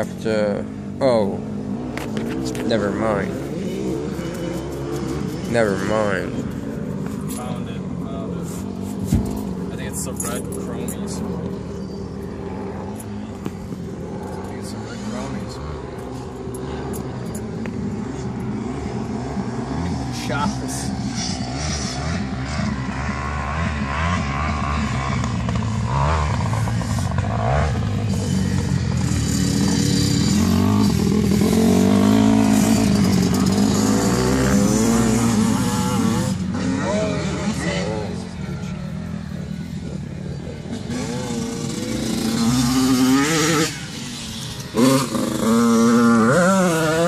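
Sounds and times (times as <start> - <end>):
dirt bike engine revving: 0.0 - 47.0.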